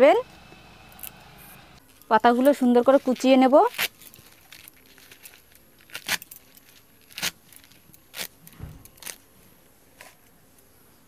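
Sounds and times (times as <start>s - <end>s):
leaf rustles: 1.0s - 8.4s.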